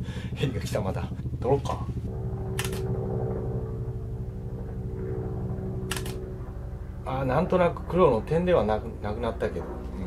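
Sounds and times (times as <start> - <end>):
helicopter droning hum: 0.0 - 10.0
sharp click: 2.6 - 2.9, 5.9 - 6.2.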